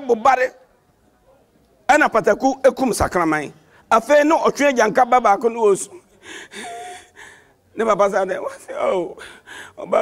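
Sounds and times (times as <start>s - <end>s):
man gasping and sobbing: 6.0s - 7.6s, 9.1s - 10.0s.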